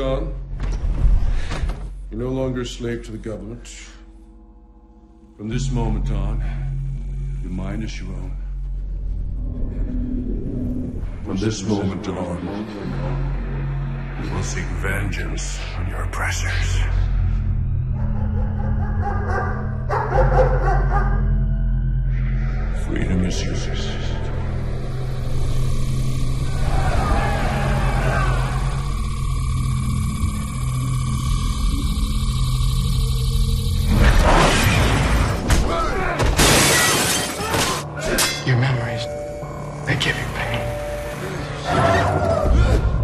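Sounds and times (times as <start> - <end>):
low droning music: 0.0 - 43.0
dog barking: 17.9 - 21.2
plate glass shattering: 36.4 - 38.5.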